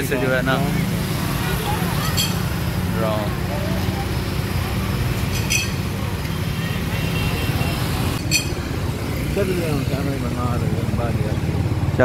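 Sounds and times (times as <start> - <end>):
motorcycles and road traffic: 0.0 - 12.0.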